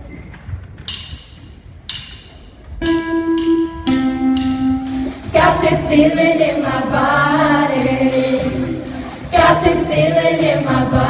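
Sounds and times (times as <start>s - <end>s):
band playing held chord: 2.8s - 9.8s.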